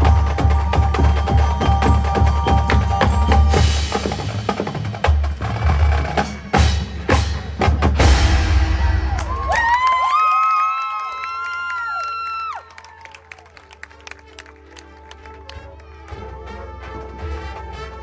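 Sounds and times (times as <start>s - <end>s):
marching drum line: 0.0s - 9.9s.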